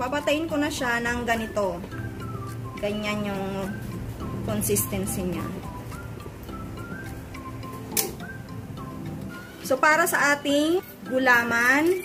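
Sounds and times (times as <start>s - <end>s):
bright plucked melody music: 0.0s - 12.0s
sharp click: 7.9s - 8.2s.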